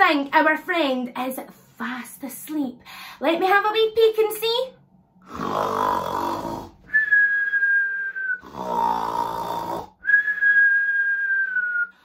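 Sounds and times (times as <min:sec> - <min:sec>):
woman snoring: 0:05.2 - 0:07.0, 0:08.4 - 0:10.1
high whistle on out-breath: 0:06.9 - 0:08.5, 0:10.0 - 0:12.0.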